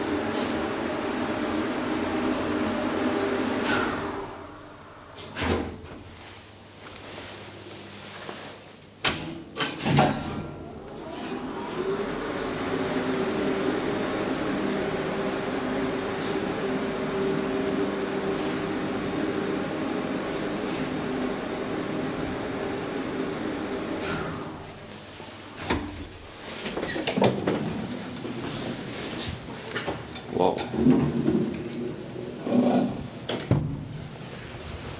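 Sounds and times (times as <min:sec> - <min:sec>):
elevator hoist motor humming: 0:10.1 - 0:24.7.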